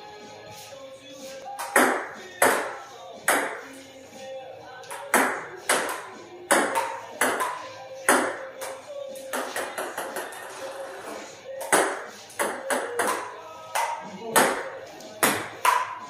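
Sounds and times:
table-tennis ball hits: 1.6 - 3.7, 4.9 - 10.4, 11.6 - 16.0.

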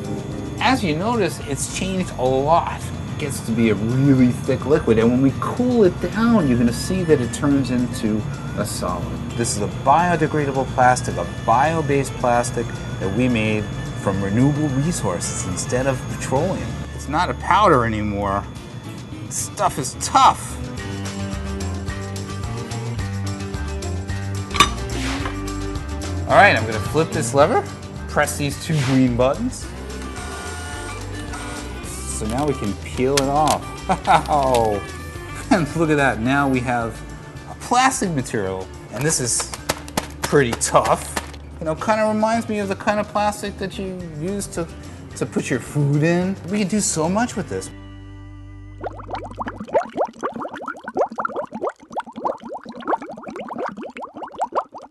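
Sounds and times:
background music: 0.0 - 54.8
metal plate clanking: 24.5 - 25.4
cartoon bubbling blips: 48.8 - 54.9.

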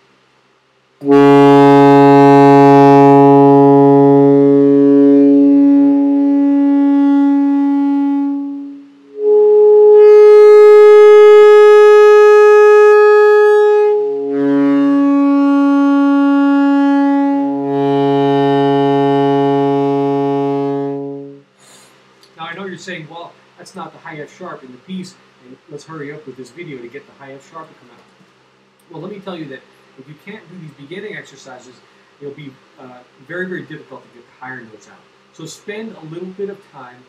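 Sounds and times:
saxophone sustained tones: 1.0 - 21.5.

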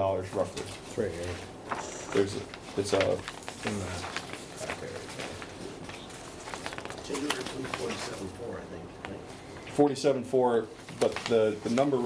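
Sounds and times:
paper rustling: 0.3 - 9.7, 10.6 - 12.0.

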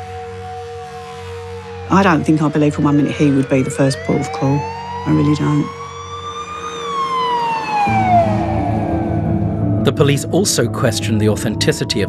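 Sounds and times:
low music bed: 0.0 - 12.0
siren wailing: 0.0 - 12.0.

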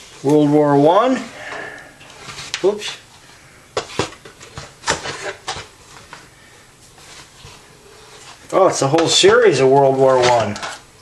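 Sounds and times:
soft handling noise: 0.0 - 10.8.

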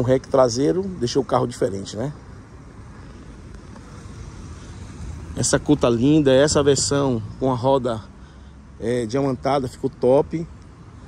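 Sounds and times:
distant traffic rumble: 0.0 - 11.0.

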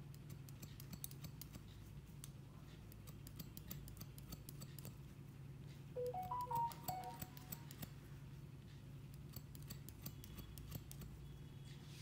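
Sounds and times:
scissors snipping hair: 0.1 - 5.0, 6.8 - 8.0, 9.1 - 11.1.

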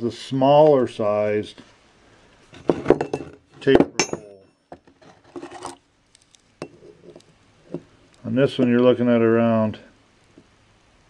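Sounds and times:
ringing metal clink: 4.0 - 4.5.

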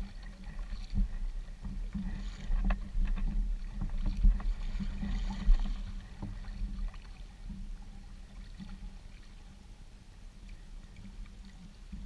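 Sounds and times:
paddle strokes splashing: 0.0 - 9.6
steady low rumble: 0.0 - 12.0.

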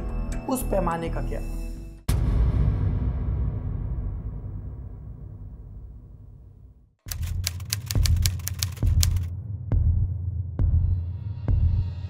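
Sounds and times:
typewriter key clacks: 7.1 - 9.3.

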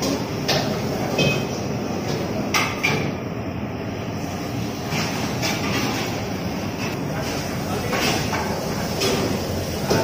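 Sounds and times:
low kitchen rumble: 0.0 - 10.0.

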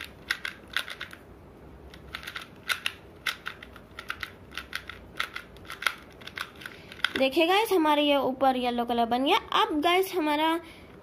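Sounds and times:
puzzle cube layers clicking: 0.0 - 1.2, 1.9 - 7.2.

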